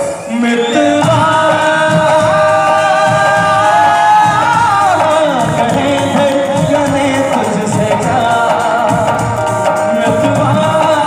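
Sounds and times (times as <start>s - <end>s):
tabla: 0.0s - 11.0s
man singing a long note: 0.1s - 11.0s.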